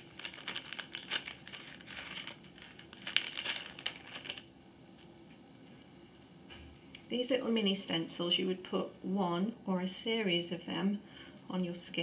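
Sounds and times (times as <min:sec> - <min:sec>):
plastic packet crinkling: 0:00.0 - 0:05.1.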